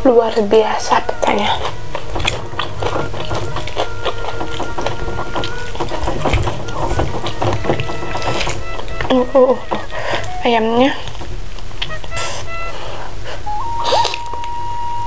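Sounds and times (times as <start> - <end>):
chewing and wet mouth sounds: 0.0 - 14.9
fingers working through food: 0.0 - 15.0.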